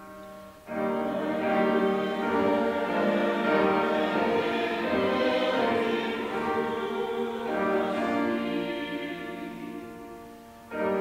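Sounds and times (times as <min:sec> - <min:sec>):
choir singing slow chords: 0:00.5 - 0:11.0.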